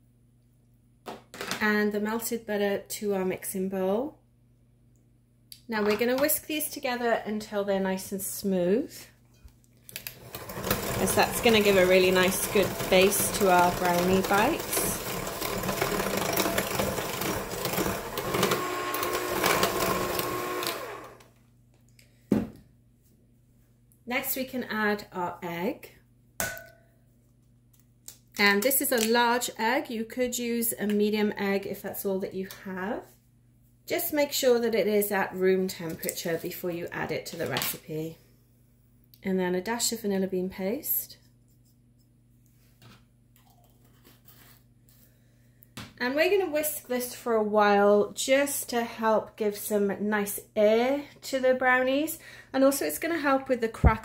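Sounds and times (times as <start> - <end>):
electric hand mixer running: 10.2 - 21.3.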